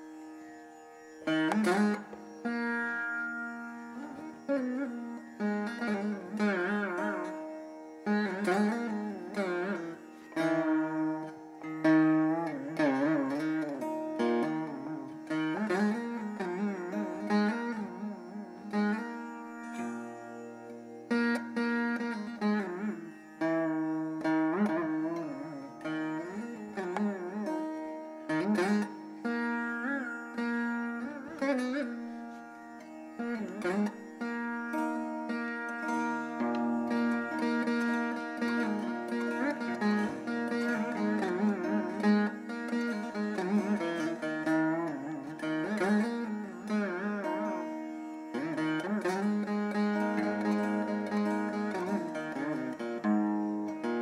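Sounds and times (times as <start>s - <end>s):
plucked string instruments improvising: 1.0s - 54.0s.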